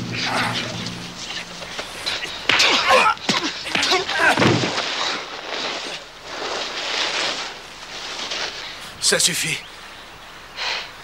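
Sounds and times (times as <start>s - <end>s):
scuffling and struggling: 0.2s - 9.1s.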